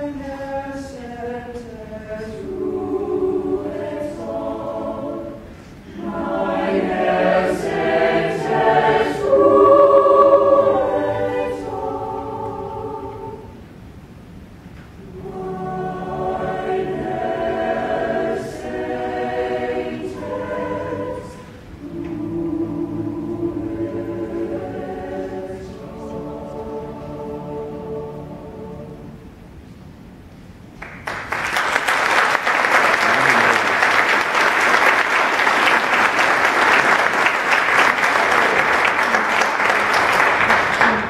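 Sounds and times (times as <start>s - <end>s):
choir singing in harmony: 0.0s - 14.1s, 14.9s - 29.7s, 31.6s - 41.0s.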